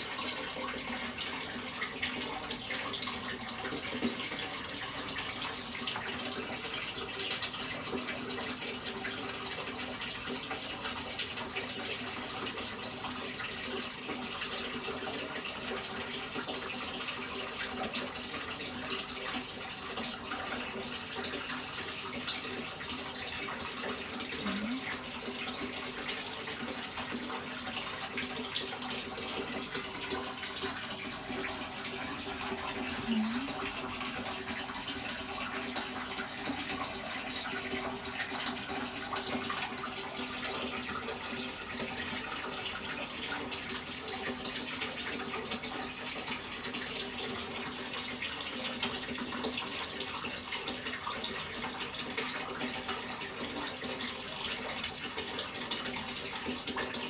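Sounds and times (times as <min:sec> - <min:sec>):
running water rushing: 0:00.0 - 0:48.1.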